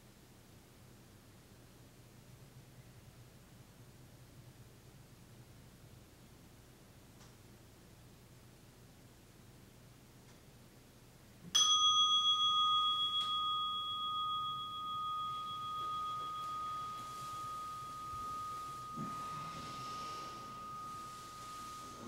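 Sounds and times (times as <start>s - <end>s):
meditation bell ringing: 11.6s - 22.0s
robes rustling: 12.9s - 22.0s.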